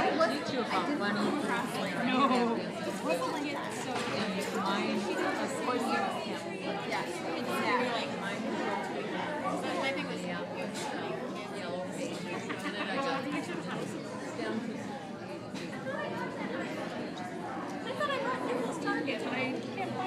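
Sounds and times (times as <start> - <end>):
indistinct chatter: 0.0 - 20.0.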